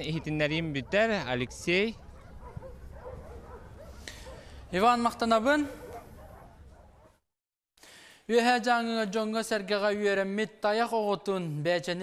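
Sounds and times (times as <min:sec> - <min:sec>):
dogs yelping and whining: 0:02.0 - 0:04.6, 0:05.8 - 0:07.1.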